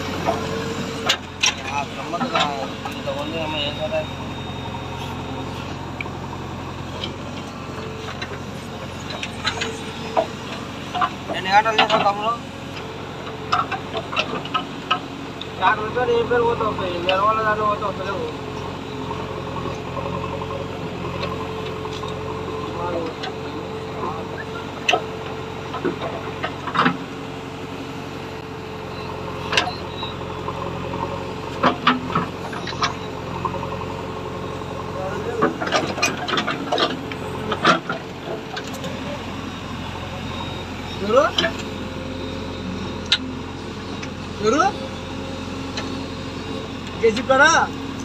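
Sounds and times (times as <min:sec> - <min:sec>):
backhoe digging soil: 0:00.0 - 0:48.0
diesel engine running: 0:00.0 - 0:48.0.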